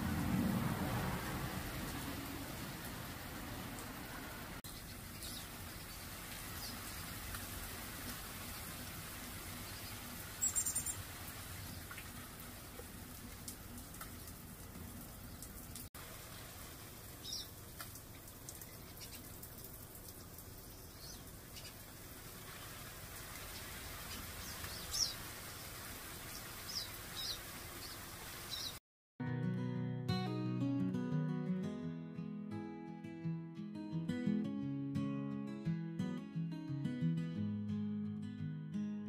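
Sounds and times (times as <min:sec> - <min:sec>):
high bird chirps: 0:09.7 - 0:11.0.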